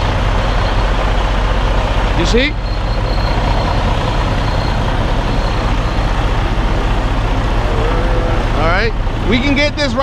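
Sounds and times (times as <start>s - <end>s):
truck diesel engine running: 0.0s - 10.0s.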